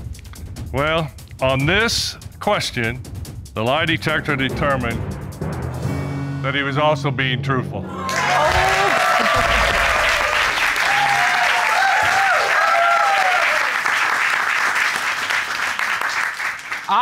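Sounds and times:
people whooping and cheering: 7.9 - 14.2
audience applauding: 7.9 - 17.0.

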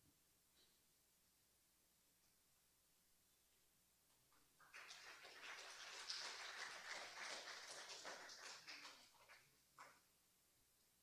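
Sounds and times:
faint scattered applause: 4.6 - 9.9.

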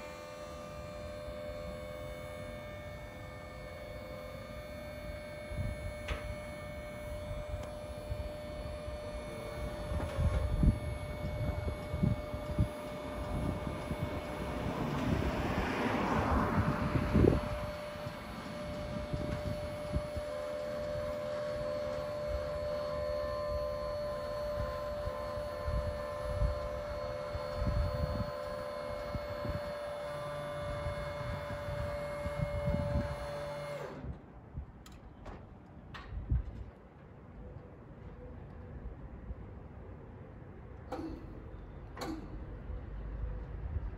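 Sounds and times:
hydraulic pump motor whining: 0.0 - 35.4, 40.7 - 43.6
wind buffeting microphone: 5.5 - 34.8, 36.0 - 36.8.

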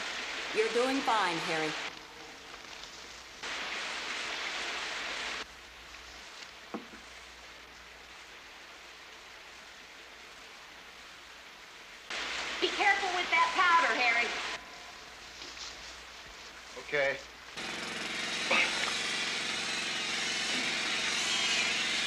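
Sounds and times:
person's voice: 0.6 - 1.8.

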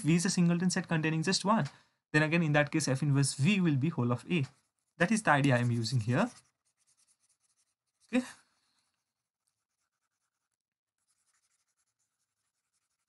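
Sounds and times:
stylus scratching on tablet: 3.0 - 8.2, 8.8 - 13.0.

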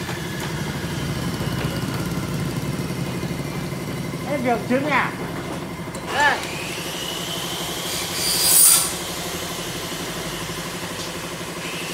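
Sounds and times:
metal frame scraping on table: 8.1 - 9.0.

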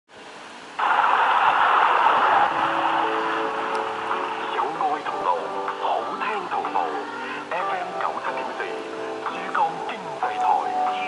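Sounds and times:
radio static hiss: 0.6 - 11.0.

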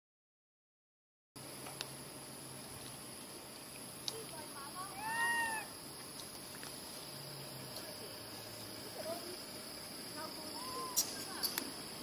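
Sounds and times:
high-pitched insect drone: 1.4 - 12.0
macaque coo call: 4.9 - 5.7, 10.5 - 11.6
faint squeaks: 10.6 - 11.6.

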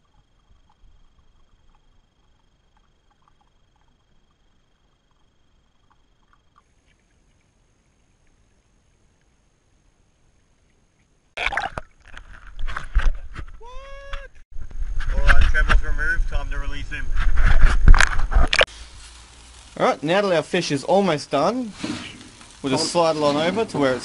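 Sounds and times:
person talking: 13.6 - 14.4.

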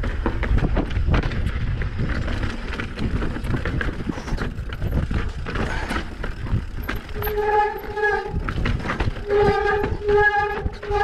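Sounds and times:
mountain bike clattering over rocks: 0.0 - 11.0
high-pitched whine from bike: 1.1 - 11.0.

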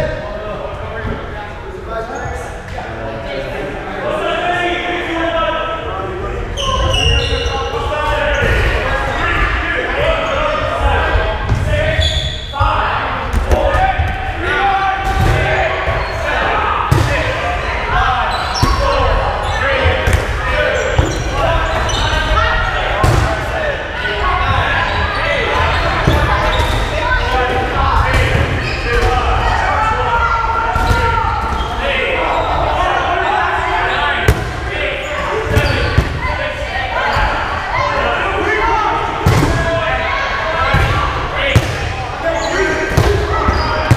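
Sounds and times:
players shouting and chattering: 0.0 - 43.9.

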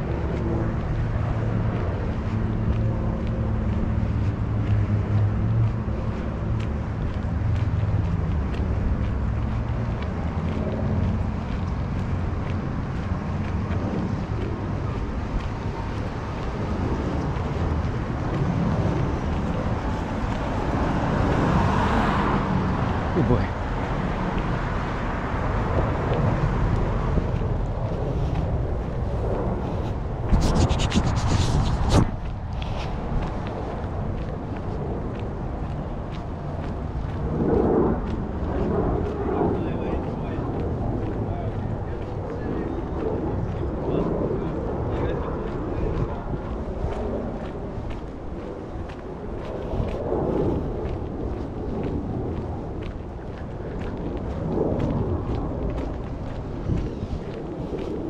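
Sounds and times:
outdoor street ambience: 0.0 - 58.0
rush of noise: 0.0 - 58.0
wind noise on microphone: 0.0 - 58.0.

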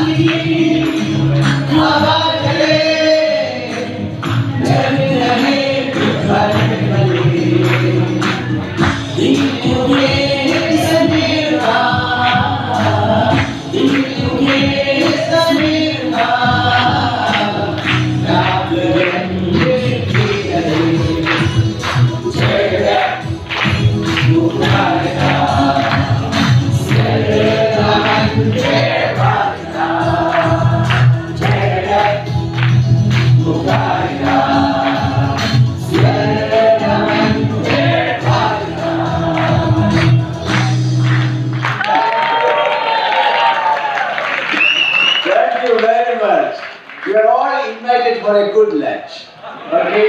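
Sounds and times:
hand claps: 0.0 - 2.0, 3.7 - 38.6, 39.3 - 46.0
sharp percussive beats: 0.0 - 41.5
group singing in chorus: 0.0 - 41.8.

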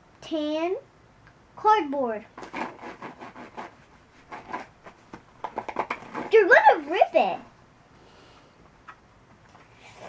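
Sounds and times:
fingers scratching cardboard: 2.4 - 6.4.

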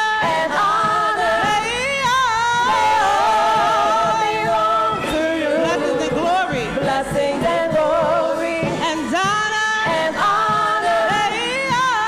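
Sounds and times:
group singing gospel song: 0.0 - 12.0.

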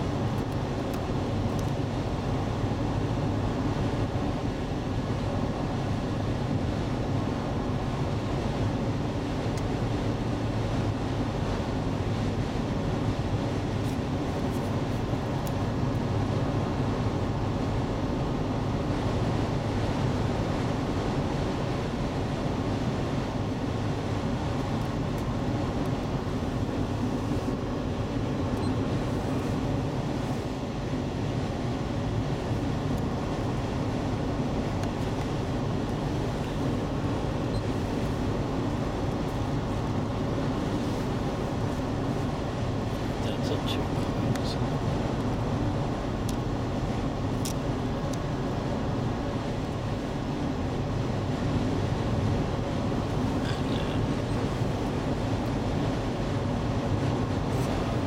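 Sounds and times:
road and engine noise in car: 0.0 - 58.0.

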